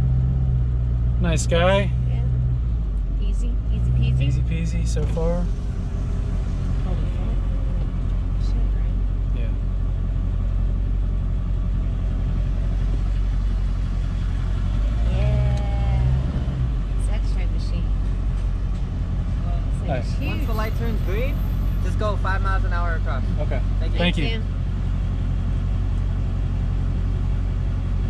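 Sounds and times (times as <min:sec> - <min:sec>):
truck engine humming: 0:00.0 - 0:28.0.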